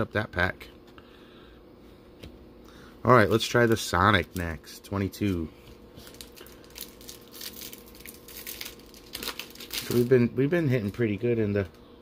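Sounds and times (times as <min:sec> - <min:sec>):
foil wrapper crinkling: 0:06.0 - 0:11.6.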